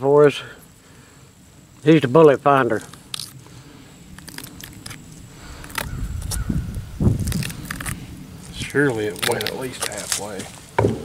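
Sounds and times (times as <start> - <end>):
crackling clicks: 2.7 - 6.5, 7.2 - 10.4.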